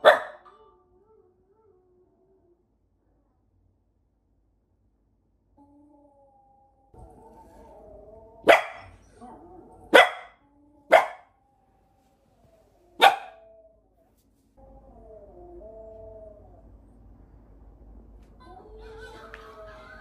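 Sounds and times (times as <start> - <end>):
puppy barking: 0.0 - 0.5, 8.4 - 9.0, 9.9 - 11.3, 13.0 - 13.4.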